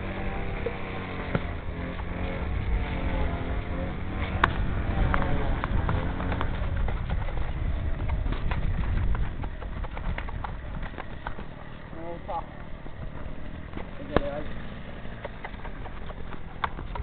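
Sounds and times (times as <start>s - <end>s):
low rumble: 0.0s - 17.0s
horse hooves knocking: 3.5s - 17.0s
horse tack clicking: 4.2s - 17.0s.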